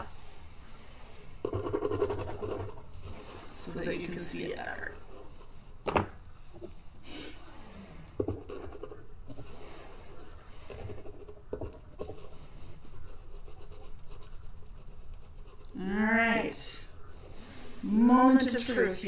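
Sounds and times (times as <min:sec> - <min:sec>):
soft scrubbing and scratching: 0:00.0 - 0:19.0.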